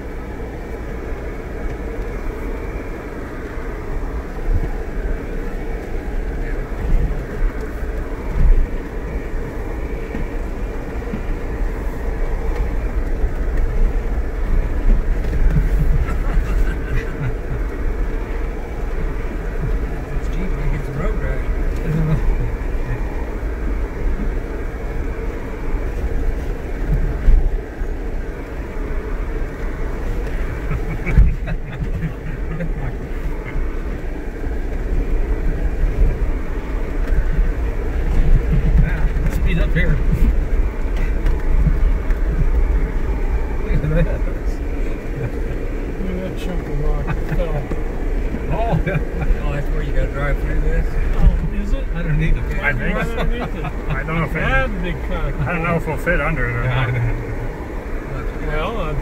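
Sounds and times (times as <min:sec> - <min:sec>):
engine and drivetrain rumble: 0:00.0 - 0:59.0.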